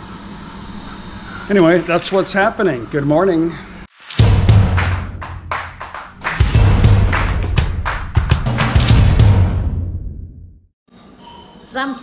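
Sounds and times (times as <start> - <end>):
deep bass note: 4.2 - 5.5, 6.4 - 10.5.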